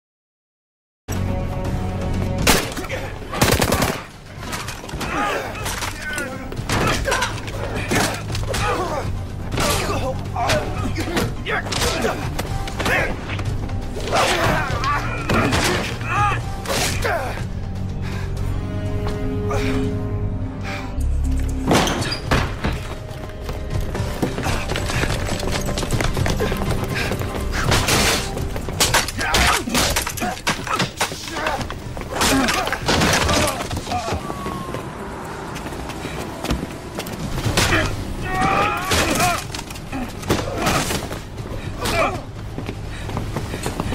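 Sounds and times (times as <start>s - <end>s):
film score music: 1.1s - 43.9s.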